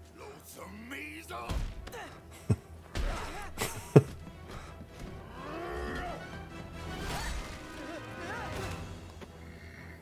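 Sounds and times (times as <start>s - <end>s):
cartoon background music: 2.9s - 10.0s.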